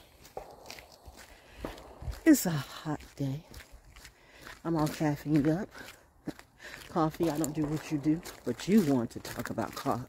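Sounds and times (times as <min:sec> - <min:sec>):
footsteps on dirt trail: 0:00.0 - 0:10.0.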